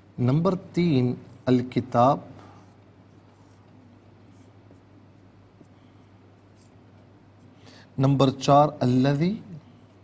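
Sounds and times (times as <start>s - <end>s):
steady low hum: 0.0s - 10.0s
marker scratching on whiteboard: 2.4s - 7.6s.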